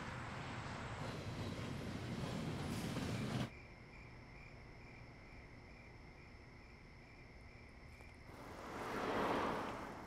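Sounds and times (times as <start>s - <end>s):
rumbling street traffic: 0.0s - 3.6s, 8.3s - 10.0s
crickets chirping: 0.0s - 10.0s.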